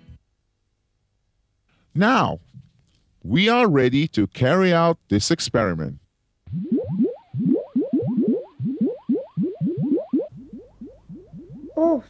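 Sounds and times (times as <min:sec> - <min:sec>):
cartoon bubbling bloops: 0:06.5 - 0:12.0.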